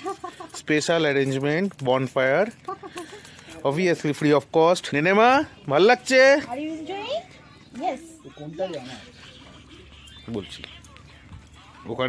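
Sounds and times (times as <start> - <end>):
people talking: 5.0 - 12.0.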